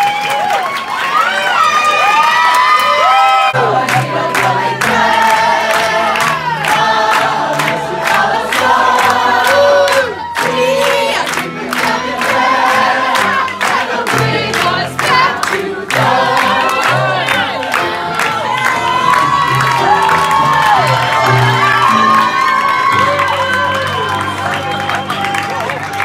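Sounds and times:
audience cheering: 0.0 - 26.0
voices singing in harmony: 3.5 - 20.0.

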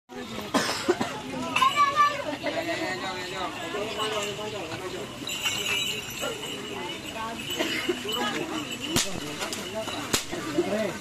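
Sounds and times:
crowd of men and boys talking: 0.1 - 11.0.

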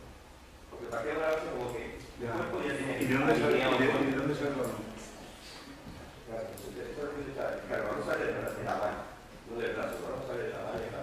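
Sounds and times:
man speaking indistinctly: 0.7 - 5.1, 6.1 - 11.0.

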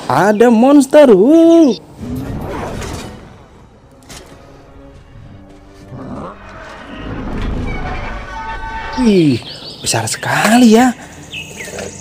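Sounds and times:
action film music: 1.8 - 10.3
low rumble: 4.6 - 9.1.

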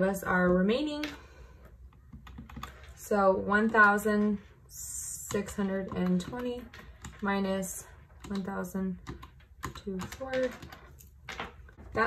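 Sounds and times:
calculator keys tapping: 1.9 - 12.0.

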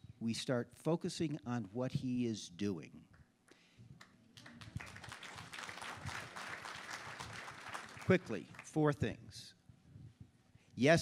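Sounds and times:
audience applauding: 4.4 - 8.9.

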